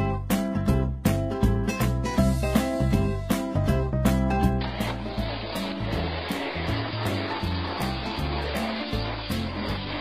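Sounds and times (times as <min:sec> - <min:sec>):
background music with beat: 0:00.0 - 0:10.0
vacuum cleaner running: 0:04.7 - 0:10.0.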